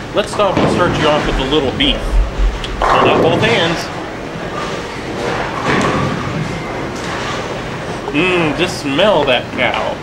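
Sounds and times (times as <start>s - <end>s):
distant voices: 0.0s - 5.6s
bowling balls and pins clattering: 0.1s - 7.4s
steady rumble: 0.2s - 4.9s.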